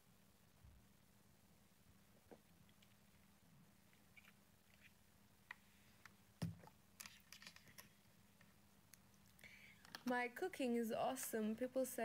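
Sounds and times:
faint breathy sound: 9.4 - 9.9.

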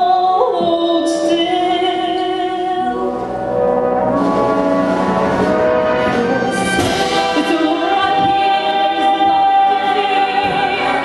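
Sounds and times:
concert band playing: 3.6 - 11.0.

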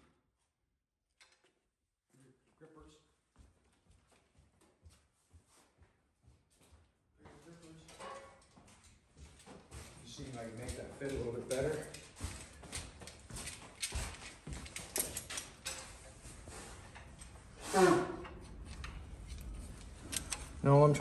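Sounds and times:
hand tools set down: 7.8 - 8.4.

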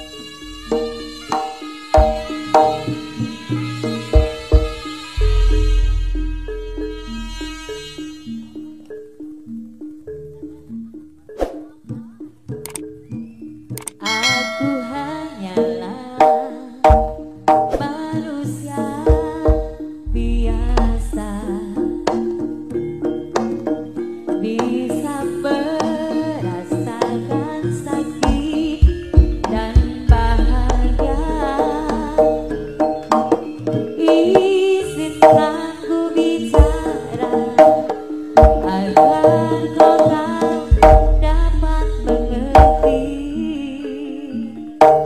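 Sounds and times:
hand drum strokes: 0.0 - 8.6, 14.0 - 23.8, 28.2 - 43.6
sharp percussive strikes: 0.0 - 8.9, 13.8 - 18.0, 19.0 - 25.0, 28.2 - 35.7, 36.4 - 43.6, 44.8 - 45.0
held pitched notes: 0.0 - 11.2, 14.0 - 18.0, 19.2 - 23.6, 28.1 - 44.2
gamelan metal keyed instruments: 0.0 - 45.0
wavering melodic line: 0.0 - 45.0.

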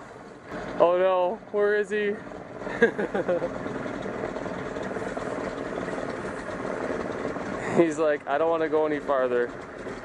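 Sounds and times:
propeller engine drone: 0.0 - 10.0.

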